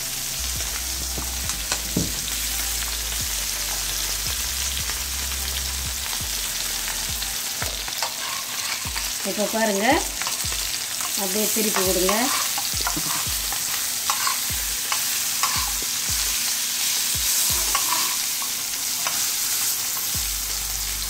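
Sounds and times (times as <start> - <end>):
hot oil sizzling: 0.0 - 21.0
spatula scraping and tapping pan: 7.6 - 9.1, 10.2 - 15.9, 17.4 - 20.1.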